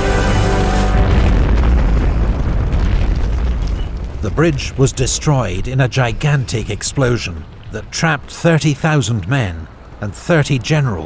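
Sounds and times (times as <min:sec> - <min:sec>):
dramatic music: 0:00.0 - 0:02.1
explosion boom and rumble: 0:00.0 - 0:07.8.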